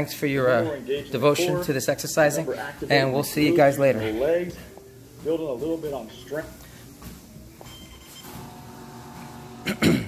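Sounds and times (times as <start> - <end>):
man clearing his throat: 9.6 - 10.0.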